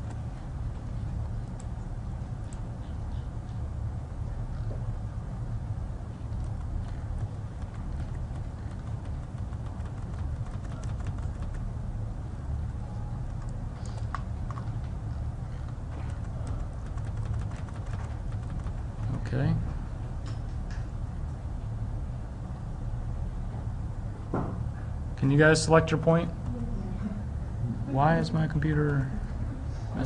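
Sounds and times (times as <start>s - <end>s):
low room hum: 0.0s - 30.0s
keyboard and mouse clicking: 6.3s - 11.7s, 13.3s - 14.9s, 15.5s - 19.2s.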